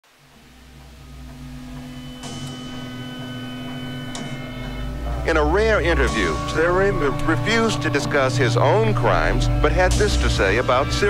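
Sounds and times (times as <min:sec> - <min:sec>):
low droning hum: 0:00.0 - 0:11.0.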